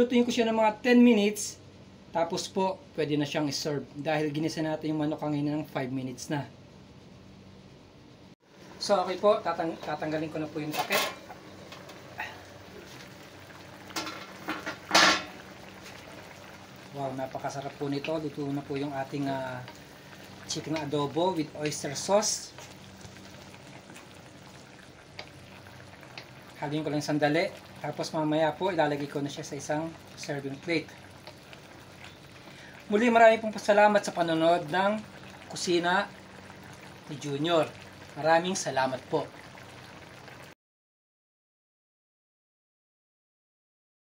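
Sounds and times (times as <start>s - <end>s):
sauce bubbling in a wok: 8.4s - 40.6s
metal clank: 14.0s - 15.4s
wooden spatula stirring: 17.5s - 32.3s.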